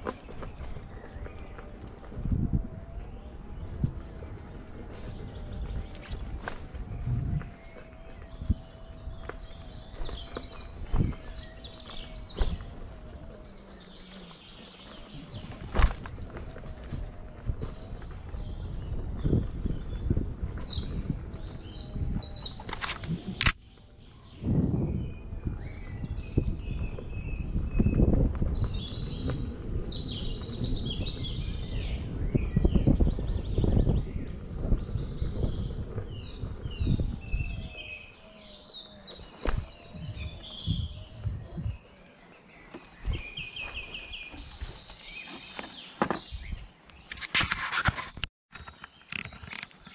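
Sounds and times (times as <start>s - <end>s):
electric unicycle rumble: 0.0s - 47.2s
birds chirping and singing: 0.0s - 49.9s
wind buffeting: 0.0s - 49.9s.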